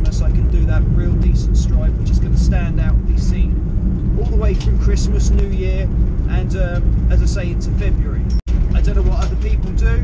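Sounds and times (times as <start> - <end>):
man talking: 0.0 - 10.0
van engine and road rumble: 0.0 - 10.0.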